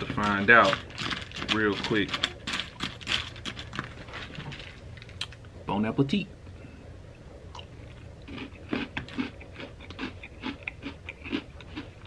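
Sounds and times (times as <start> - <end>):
spoon stirring cereal in bowl: 0.0 - 4.7.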